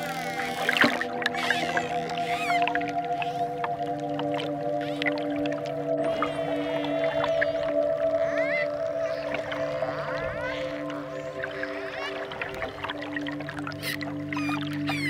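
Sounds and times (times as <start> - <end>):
dolphin whistles and clicks: 0.0 - 3.7, 13.8 - 15.0
calm synthesizer music: 0.0 - 15.0.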